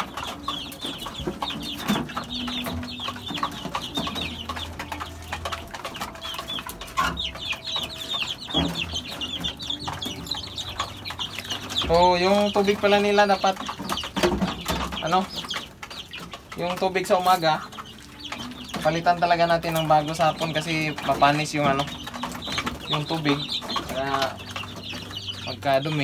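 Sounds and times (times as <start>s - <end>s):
chicks peeping: 0.0s - 26.0s.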